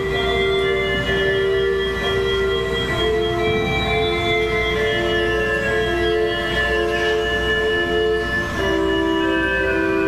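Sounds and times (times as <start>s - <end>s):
organ playing held chords: 0.0s - 10.0s.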